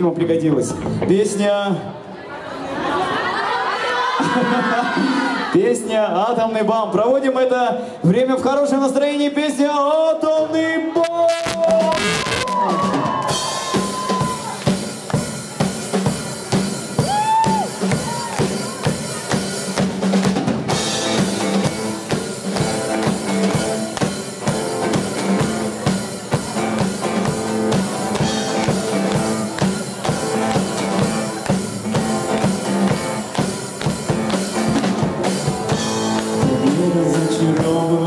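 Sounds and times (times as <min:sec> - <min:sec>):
bass guitar: 0:11.1 - 0:38.0
drum kit beat: 0:11.2 - 0:38.0.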